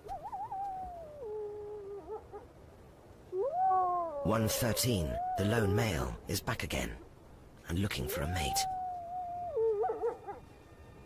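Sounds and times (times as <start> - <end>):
wolf howling: 3.3 - 6.2, 8.2 - 11.0.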